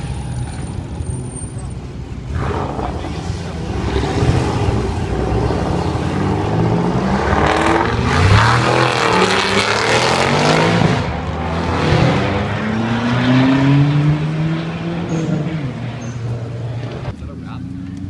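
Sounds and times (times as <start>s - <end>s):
cars driving past: 0.0s - 18.0s
engine revving: 2.3s - 18.0s.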